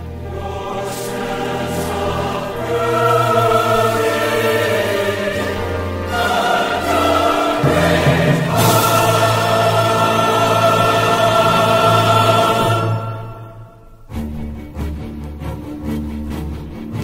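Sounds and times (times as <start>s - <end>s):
choir and orchestra chords: 0.0s - 17.0s.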